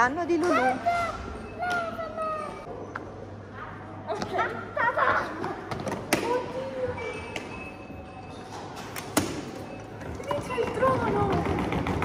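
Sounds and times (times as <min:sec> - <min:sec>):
suitcase wheels rolling on stone floor: 0:10.0 - 0:12.0.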